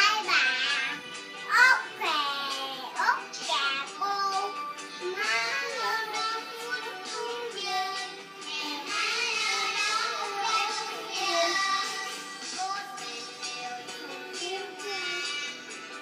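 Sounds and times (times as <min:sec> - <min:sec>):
child singing: 0:00.0 - 0:15.7
music: 0:00.0 - 0:16.0.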